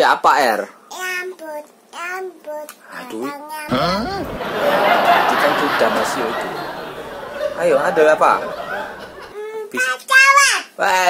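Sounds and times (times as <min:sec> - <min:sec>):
young child sing-song voice: 0:00.8 - 0:04.3, 0:09.3 - 0:10.8.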